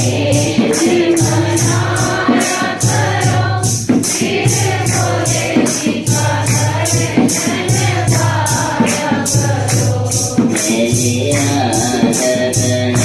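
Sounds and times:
group devotional singing: 0.0s - 13.0s
instrumental accompaniment: 0.0s - 13.0s
steady percussion beat: 0.0s - 13.0s.

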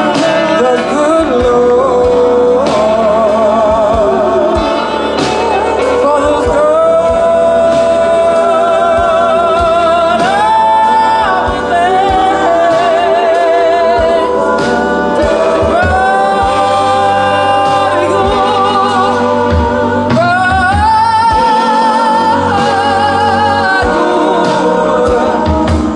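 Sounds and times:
backing harmony vocals: 0.0s - 25.9s
drums: 0.0s - 25.9s
upright bass: 0.0s - 25.9s
woman singing with vibrato: 0.0s - 25.9s.

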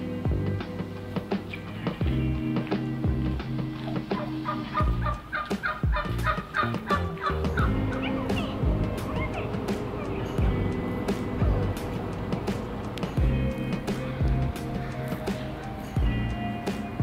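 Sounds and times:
background music: 0.0s - 17.0s
turkey gobbling: 3.8s - 10.2s.

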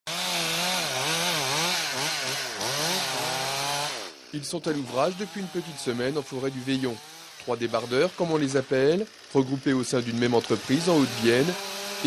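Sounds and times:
chainsaw revving: 0.1s - 12.0s.

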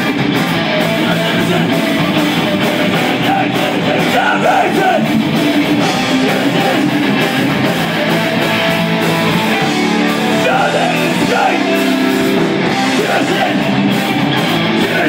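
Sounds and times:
drum kit: 0.0s - 15.0s
electric bass: 0.0s - 15.0s
electric guitars: 0.0s - 15.0s.

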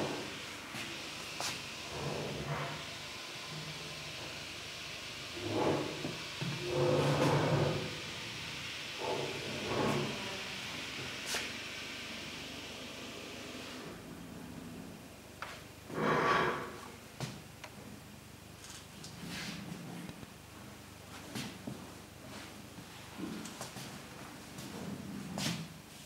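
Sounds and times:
room tone hiss: 0.0s - 26.0s.

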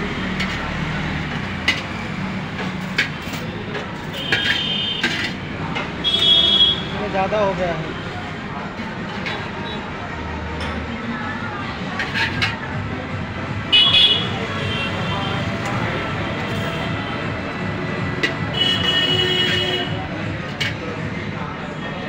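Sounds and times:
street traffic: 0.0s - 22.0s
ladle scraping a wok: 2.8s - 5.5s, 11.9s - 12.7s
vehicle horns: 4.1s - 5.4s, 6.0s - 7.0s, 13.7s - 15.6s, 18.5s - 20.0s.

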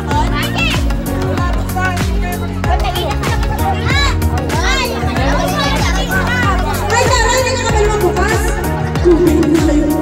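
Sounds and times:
music with steady beat: 0.0s - 10.0s
children shouting: 3.1s - 7.2s.

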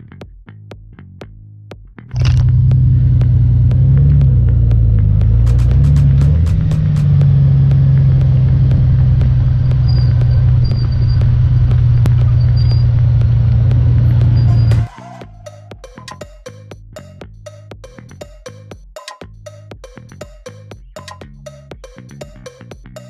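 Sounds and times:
motorcycle engine running: 2.1s - 16.9s.

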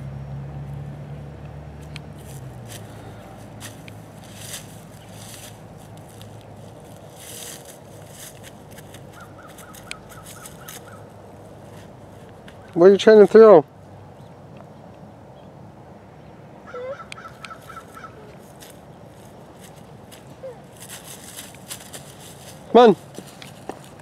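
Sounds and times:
soft rustles and scuffs: 2.2s - 12.8s, 17.6s - 24.0s.

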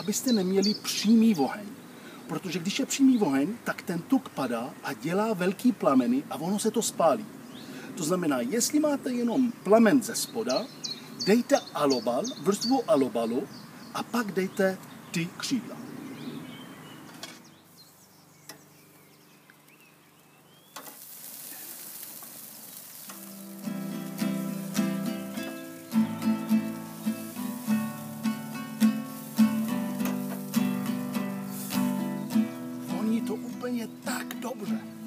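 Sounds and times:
chicken wings sizzling on a grill: 20.8s - 32.3s
plucked guitar music: 23.2s - 35.0s.

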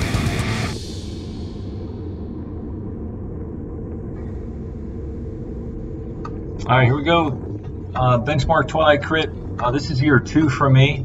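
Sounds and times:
wind rushing over microphone: 0.8s - 11.0s.

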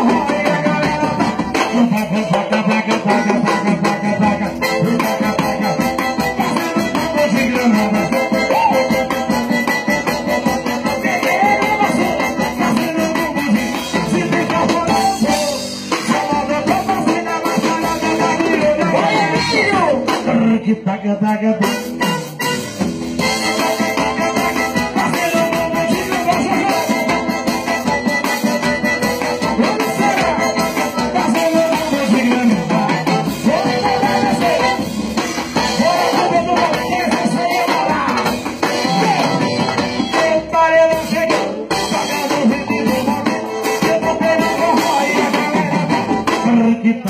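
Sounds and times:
bass drum beat: 0.0s - 20.9s, 21.5s - 47.0s
accordion melody: 0.0s - 47.0s
drum kit beat: 0.0s - 47.0s.

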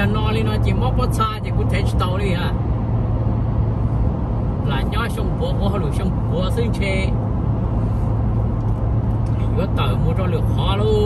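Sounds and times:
car driving at highway speed: 0.0s - 11.0s.

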